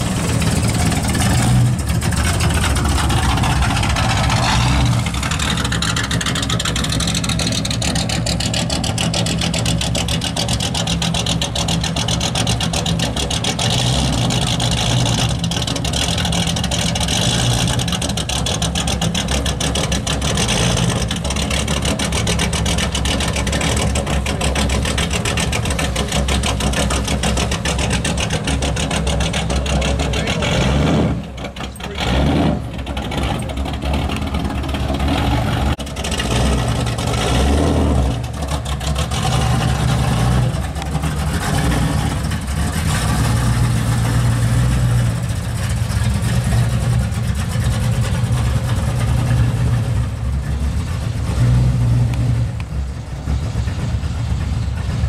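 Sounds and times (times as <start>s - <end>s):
car engine idling with throttle blips: 0.0s - 55.0s.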